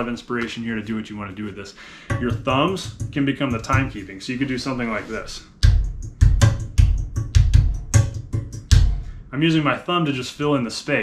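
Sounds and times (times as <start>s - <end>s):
hand drumming on hard surface: 2.0s - 4.0s, 5.6s - 9.2s.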